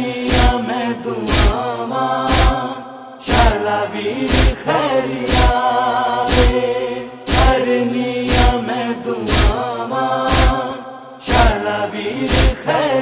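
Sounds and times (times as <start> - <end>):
chanted voices drone: 0.0 - 13.0
chest-beating thumps: 0.3 - 0.6, 1.3 - 1.6, 2.3 - 2.6, 3.3 - 3.6, 4.3 - 4.6, 5.3 - 5.6, 6.3 - 6.6, 7.3 - 7.6, 8.3 - 8.6, 9.3 - 9.6, 10.3 - 10.6, 11.3 - 11.6, 12.3 - 12.6.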